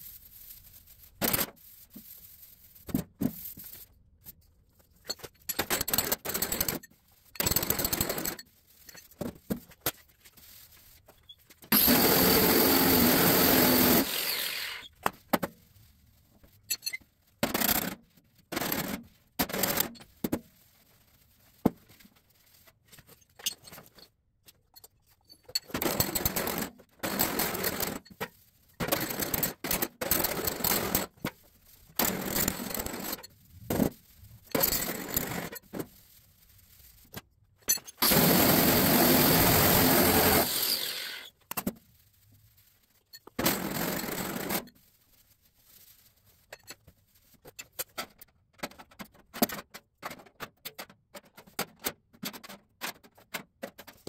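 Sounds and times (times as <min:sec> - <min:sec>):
angle grinder on sheet steel: 0:11.7 - 0:14.9, 0:38.0 - 0:41.3.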